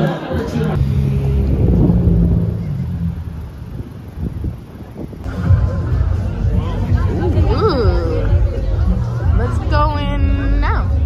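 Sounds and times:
street traffic rumble: 0:00.1 - 0:11.0
steady low hum: 0:00.4 - 0:11.0
wind buffeting microphone: 0:00.8 - 0:05.3.

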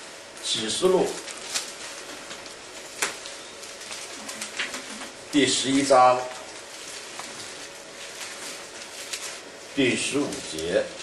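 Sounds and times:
soft rustling: 0:06.4 - 0:09.7.

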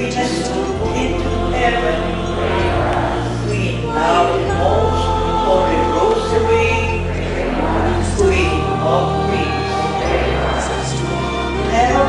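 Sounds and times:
congregation singing a hymn: 0:00.0 - 0:12.0
sustained instrumental accompaniment: 0:00.0 - 0:12.0.

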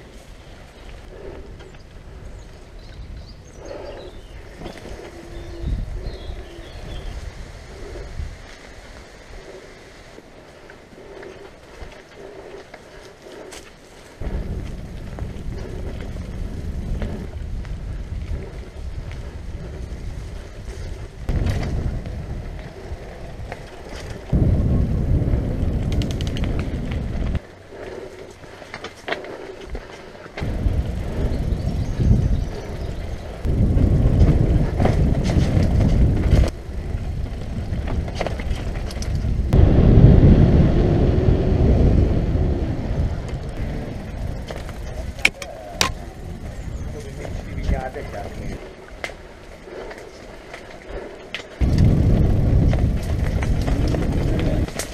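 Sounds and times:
bike rattles and clicks: 0:00.0 - 0:07.0, 0:07.7 - 0:39.6, 0:43.0 - 0:54.9
wind buffeting microphone: 0:00.0 - 0:54.9
tyre rumble on dirt: 0:51.6 - 0:54.9.

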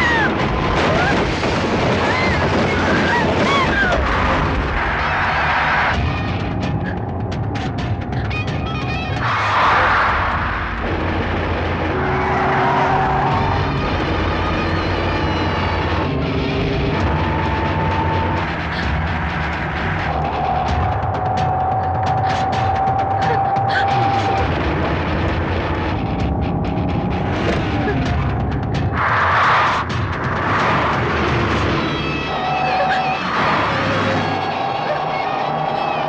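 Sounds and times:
tense film music: 0:00.0 - 0:36.0
car engine and road noise: 0:04.1 - 0:23.5, 0:24.4 - 0:32.4.

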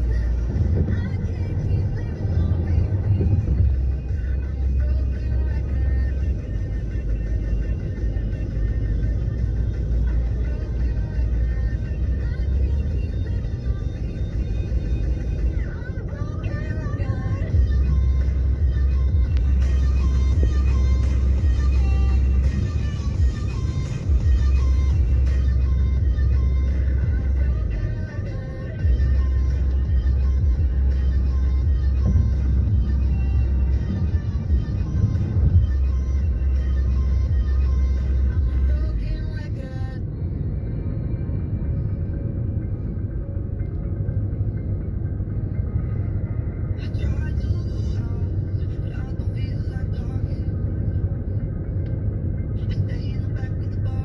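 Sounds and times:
car rumbling on road: 0:00.0 - 0:54.0
music playing: 0:00.0 - 0:54.0.

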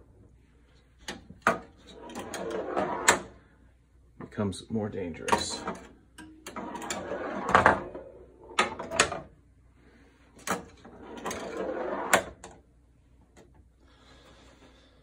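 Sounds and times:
pinball flippers clacking: 0:05.3 - 0:09.3, 0:10.4 - 0:12.6.

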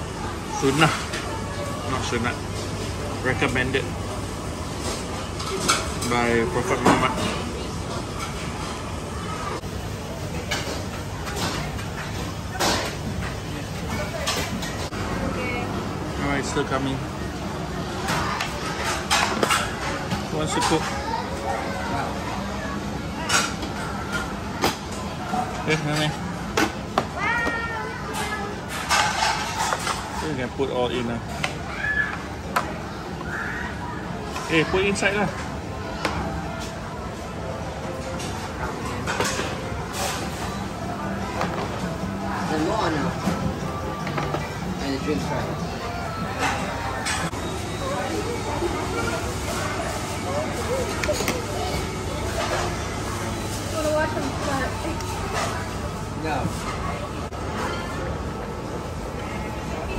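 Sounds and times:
murmur of voices: 0:00.0 - 0:59.9.

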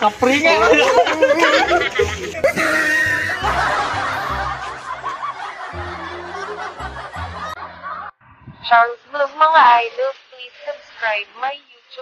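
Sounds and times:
people laughing: 0:00.3 - 0:08.2
music with repeating bass line: 0:00.4 - 0:08.1.

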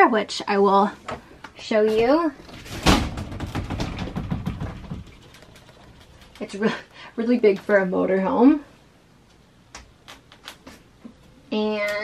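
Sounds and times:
glass shower door rattling: 0:02.0 - 0:06.5.

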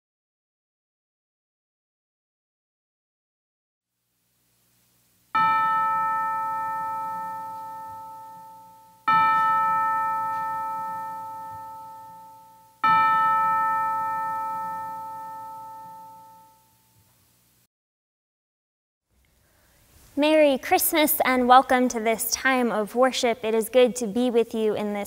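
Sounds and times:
bell ringing: 0:05.4 - 0:17.0.

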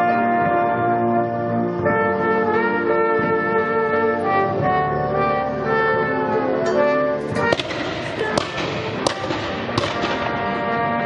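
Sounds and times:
brass band playing held chords: 0:00.0 - 0:11.0
sharp bangs: 0:07.3 - 0:10.8.

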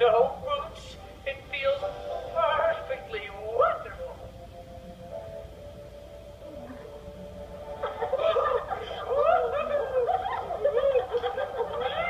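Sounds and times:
background music with held notes: 0:00.0 - 0:12.0
cartoon cat laughing: 0:07.9 - 0:12.0.

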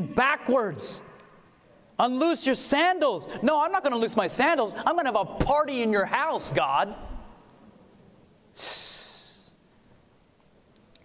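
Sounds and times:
man's sharp breath: 0:08.6 - 0:09.6.

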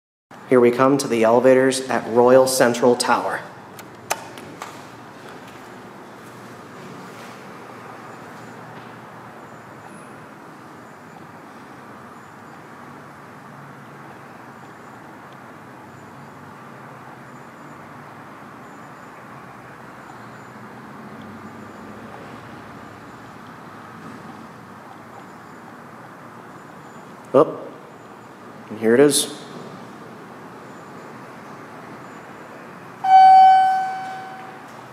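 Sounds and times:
lobby room noise: 0:00.3 - 0:34.9
elevator button click: 0:33.0 - 0:34.7.

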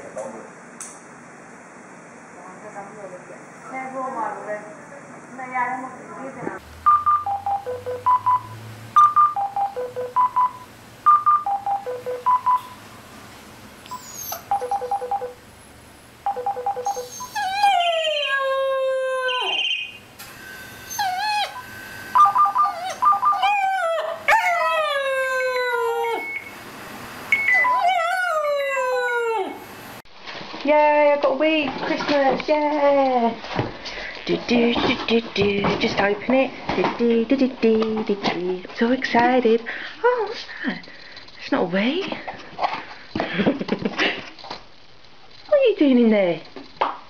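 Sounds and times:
phone beeping ringtone melody: 0:06.8 - 0:12.8, 0:14.5 - 0:15.4, 0:16.2 - 0:17.2
puppy howling: 0:16.8 - 0:20.0, 0:20.9 - 0:21.6, 0:22.2 - 0:26.4, 0:27.4 - 0:29.8.

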